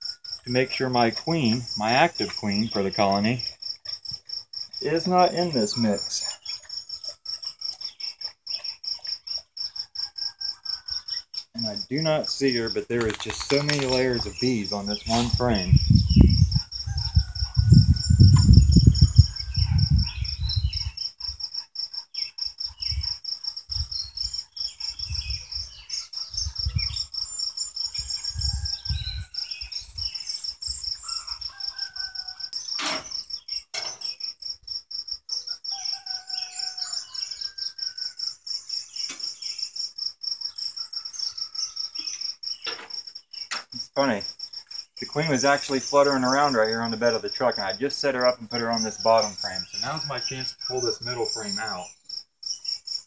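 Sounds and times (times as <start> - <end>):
birds chirping: 0.0 - 9.9, 10.7 - 21.4, 22.0 - 34.4, 35.4 - 52.9
insect chirping: 0.0 - 53.0
sharp click: 13.0 - 14.0
low rumbling on microphone: 15.0 - 20.9.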